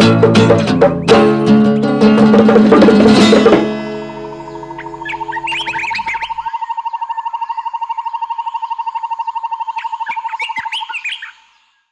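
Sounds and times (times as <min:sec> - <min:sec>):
fast-pulsing electronic tone: 0:03.9 - 0:10.0
bird-like chirps: 0:03.9 - 0:11.9.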